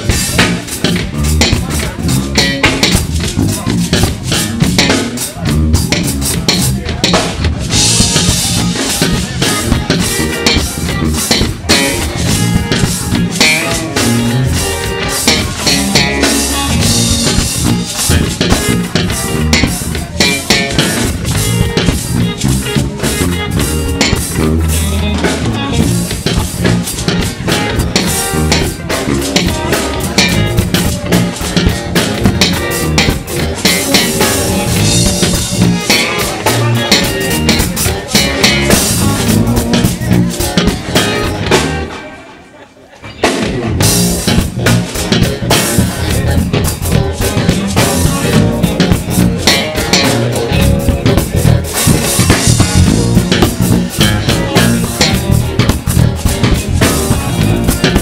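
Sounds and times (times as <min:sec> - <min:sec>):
funk band with drums and guitar: 0:00.0 - 0:58.0.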